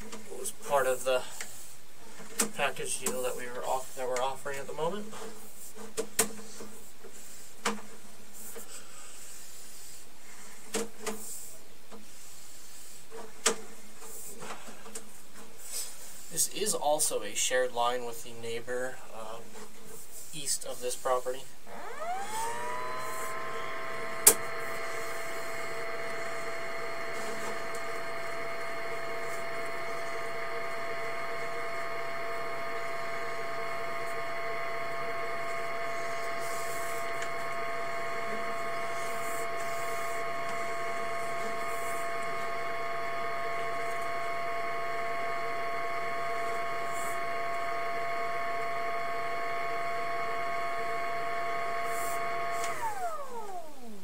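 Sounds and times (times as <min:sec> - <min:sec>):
electric motor whine: 0:21.1 - 0:54.0.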